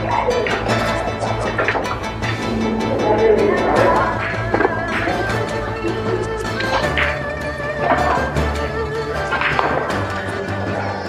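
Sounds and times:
wavering instrumental background music: 0:00.0 - 0:11.0.

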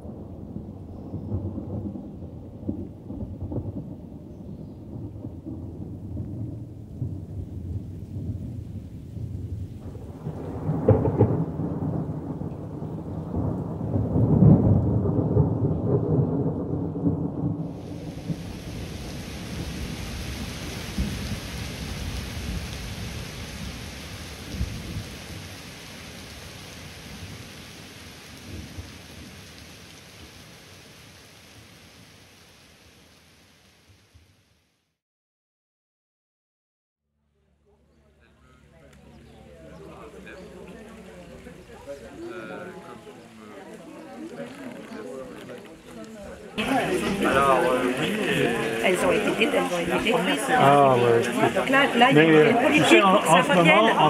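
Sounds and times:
thunder rumbling: 0:00.0 - 0:30.4, 0:45.3 - 0:54.0
heavy rain: 0:00.0 - 0:34.8, 0:38.5 - 0:54.0.

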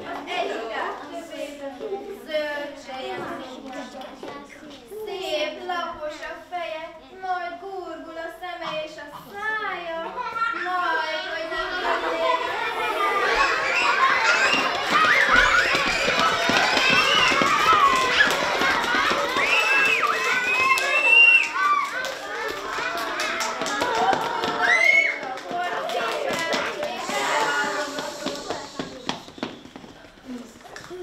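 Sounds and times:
children chattering and calling out: 0:00.0 - 0:31.0.

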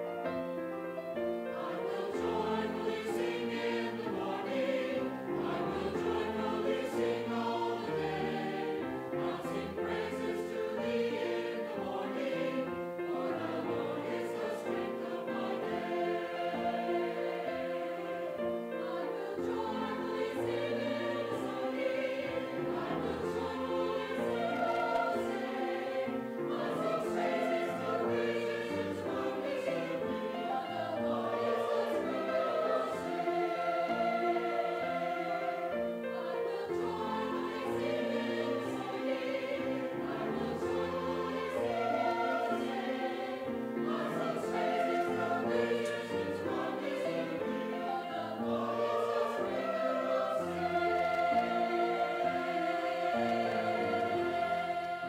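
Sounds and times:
choir singing held chords: 0:00.0 - 0:55.0.

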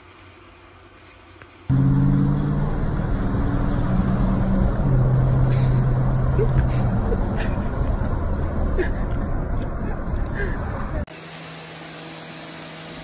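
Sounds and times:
low hum changing pitch: 0:01.7 - 0:09.8
car road noise: 0:01.7 - 0:11.1.

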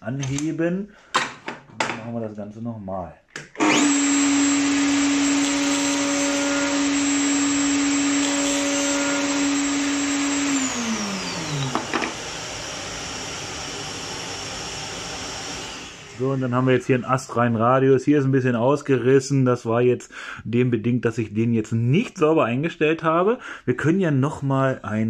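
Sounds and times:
router high whine: 0:03.6 - 0:17.1.

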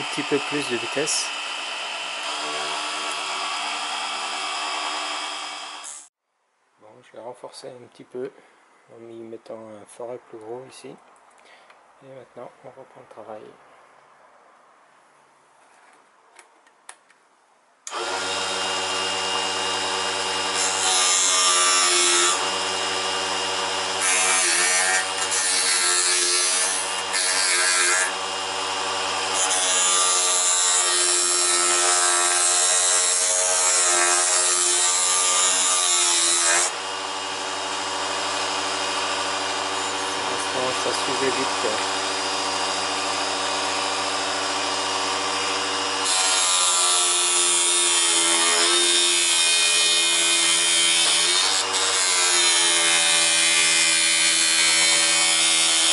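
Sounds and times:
lathe motor whining: 0:00.0 - 0:06.1, 0:17.9 - 0:32.6, 0:36.4 - 0:47.2.

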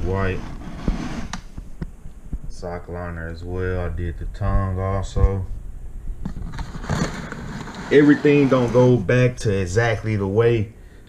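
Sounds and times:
rustling handling noise: 0:06.2 - 0:09.4.

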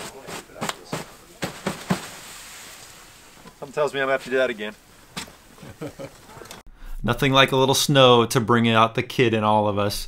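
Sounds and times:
snow knocked off tent fabric: 0:00.0 - 0:03.6
faint steady hiss: 0:00.0 - 0:08.1.

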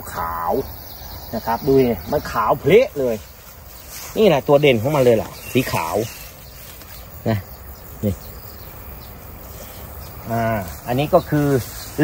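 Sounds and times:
person speaking: 0:00.0 - 0:06.4
crickets chirping: 0:00.0 - 0:12.0.

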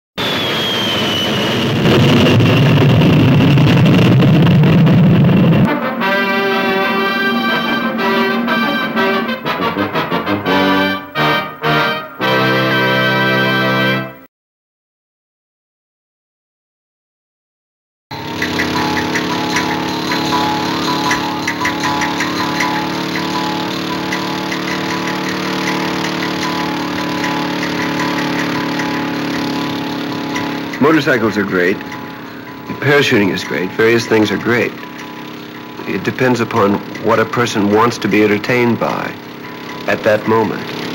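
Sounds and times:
jet airliner rumble: 0:00.2 - 0:05.8, 0:18.2 - 0:40.9
high jet whine: 0:00.2 - 0:12.9, 0:18.1 - 0:40.9
motorcycle engine running: 0:01.8 - 0:09.6, 0:18.1 - 0:40.9.

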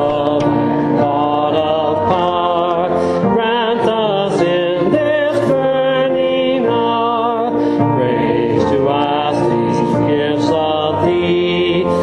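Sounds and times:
instrumental accompaniment: 0:00.0 - 0:12.0
voices singing a hymn: 0:00.0 - 0:12.0.

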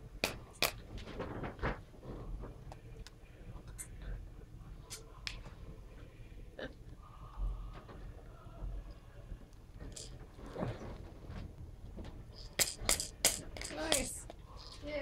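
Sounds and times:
plastic toy rings clacking and rattling: 0:09.9 - 0:10.2, 0:12.4 - 0:14.8.

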